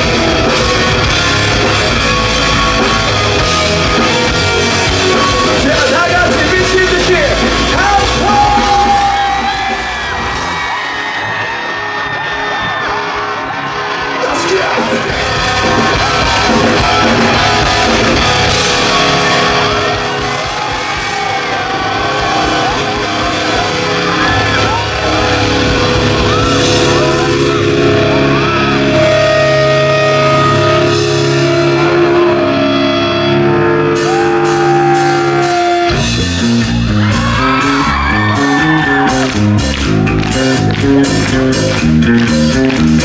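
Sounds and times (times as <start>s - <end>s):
choppy bass and drum riff: 0.0s - 10.7s, 14.4s - 43.0s
drums: 0.0s - 43.0s
electric guitars holding notes: 0.0s - 43.0s.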